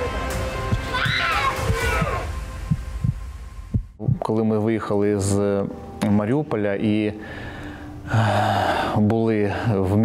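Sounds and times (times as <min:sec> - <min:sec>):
heartbeat thumps: 0:00.6 - 0:01.0, 0:01.6 - 0:04.2.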